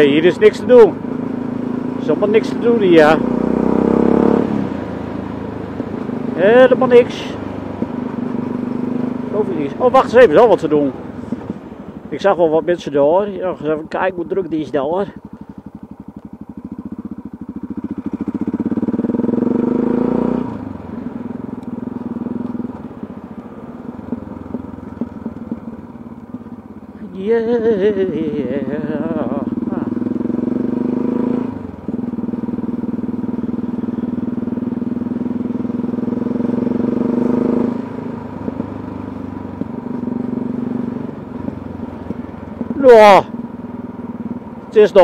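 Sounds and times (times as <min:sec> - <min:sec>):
motorcycle engine running: 0:00.0 - 0:45.0.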